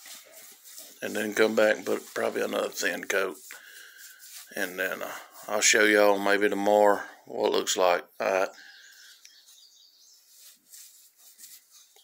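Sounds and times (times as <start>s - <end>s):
paintbrush strokes on rough wood: 0.0s - 7.2s, 10.1s - 12.0s.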